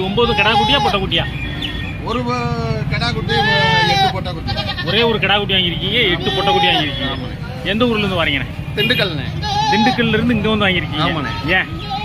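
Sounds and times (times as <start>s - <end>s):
goats bleating: 3.3s - 5.2s, 9.4s - 10.2s.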